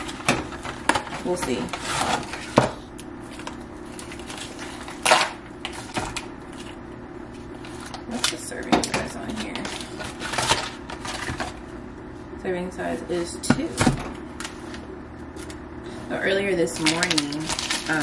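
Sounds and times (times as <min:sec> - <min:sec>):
plastic wrapping rustling and crinkling: 0:16.8 - 0:18.0.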